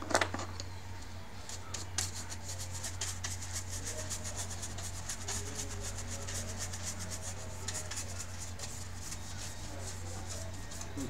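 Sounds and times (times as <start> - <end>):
paintbrush bristle swishes: 2.0 - 11.0.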